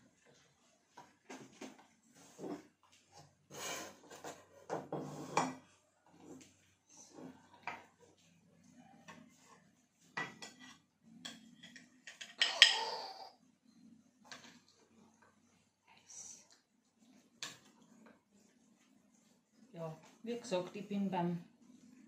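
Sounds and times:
metal spatula scraping a dish: 3.5s - 7.4s, 10.3s - 12.8s.

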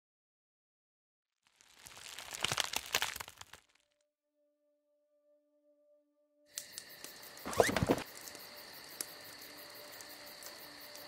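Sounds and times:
dense crackling and snapping: 1.4s - 4.0s.

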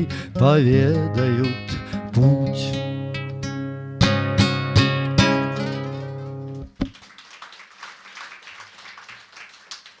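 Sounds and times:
acoustic guitar chord ringing: 0.0s - 6.6s
faint scattered applause: 5.6s - 10.0s.

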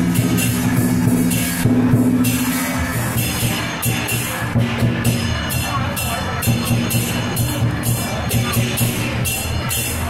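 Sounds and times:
low sustained ringing: 0.0s - 4.0s
cymbal clashes: 0.0s - 10.0s
drum beats: 0.0s - 10.0s.

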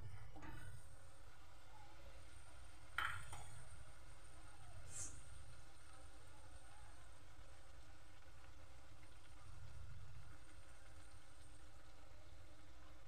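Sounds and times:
food deep-frying in oil: 0.0s - 13.0s.

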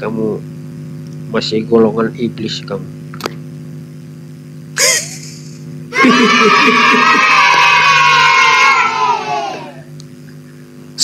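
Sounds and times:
person yelling: 6.0s - 9.8s.

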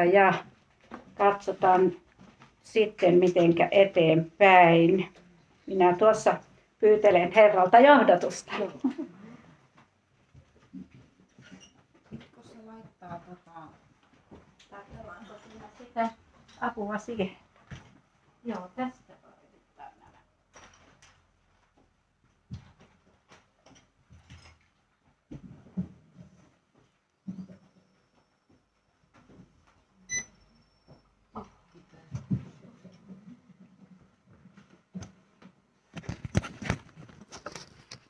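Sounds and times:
high electronic beep: 30.1s - 30.3s.

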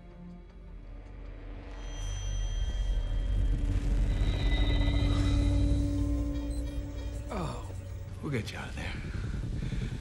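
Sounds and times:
deep rumbling drone: 0.4s - 10.0s.

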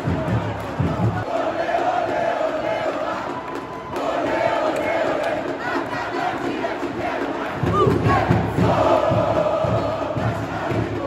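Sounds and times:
football crowd chanting: 0.0s - 11.0s.

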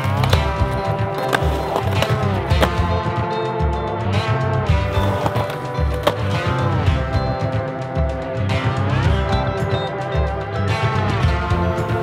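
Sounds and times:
skateboard knocks: 0.0s - 2.9s, 4.9s - 6.4s
skateboard wheels rolling on concrete: 0.0s - 3.2s, 4.7s - 7.6s
music with steady beat: 0.0s - 12.0s.

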